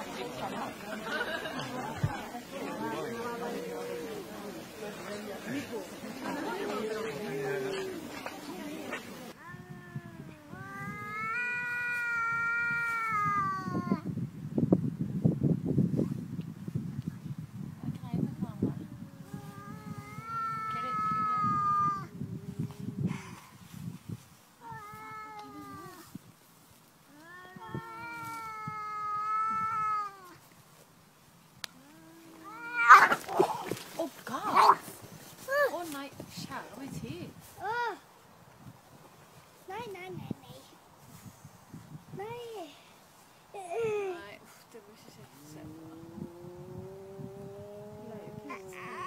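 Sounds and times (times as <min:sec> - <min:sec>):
cats yowling: 0:09.5 - 0:14.0, 0:19.4 - 0:23.0, 0:27.3 - 0:30.3, 0:32.2 - 0:33.6, 0:45.7 - 0:49.0
cat growling: 0:45.3 - 0:49.0.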